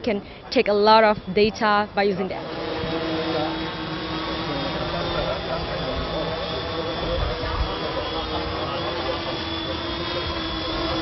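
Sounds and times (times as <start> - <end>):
drone buzzing with high whine: 1.0 - 11.0.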